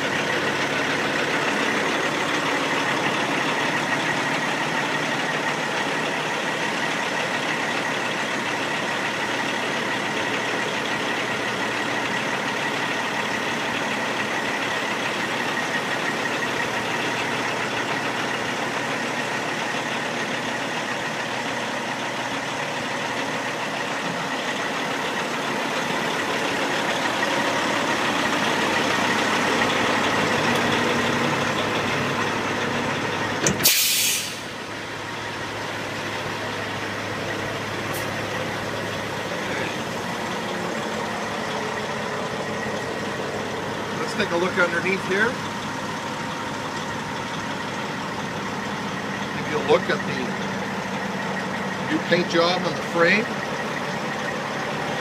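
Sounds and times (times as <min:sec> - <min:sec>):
diesel truck engine running: 0:00.0 - 0:55.0.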